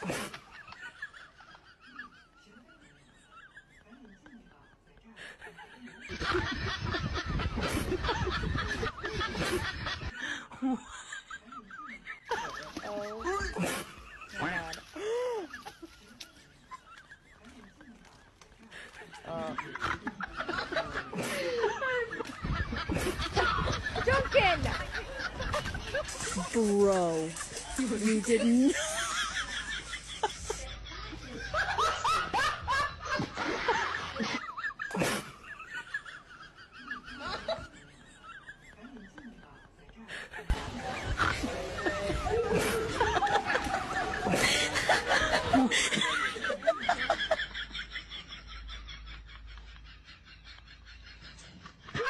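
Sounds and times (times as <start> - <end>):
people laughing hard: 0.0 - 52.0.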